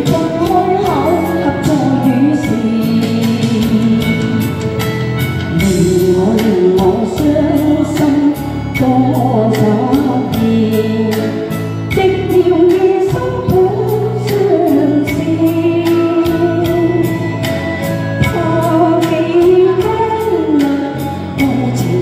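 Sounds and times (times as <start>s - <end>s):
backing track with steady beat: 0.0s - 22.0s
woman singing pop ballad: 0.0s - 22.0s.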